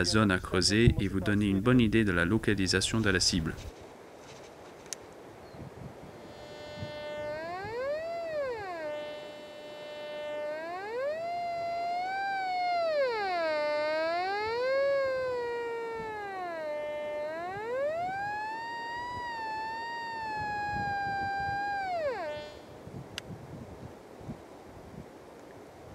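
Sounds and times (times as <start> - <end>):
metal detector tone: 6.3 - 22.6.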